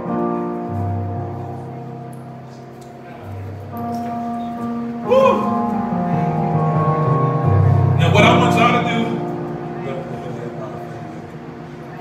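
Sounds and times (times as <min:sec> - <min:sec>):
electronic keyboard playing chords: 0:00.0 - 0:12.0.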